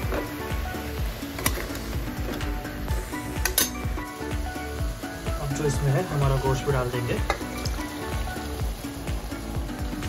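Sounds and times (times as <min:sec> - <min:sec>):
vegetables sizzling in hot oil: 0:00.0 - 0:10.0.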